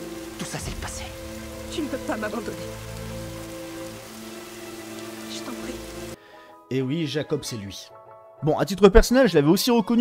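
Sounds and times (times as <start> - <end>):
steady rain falling: 0.0 - 6.2
soft film score: 0.0 - 10.0.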